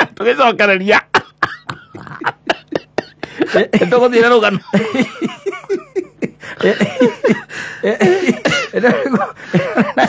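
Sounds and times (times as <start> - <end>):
men laughing hard: 1.0 - 10.0
breathless wheezing gasps: 7.5 - 8.3.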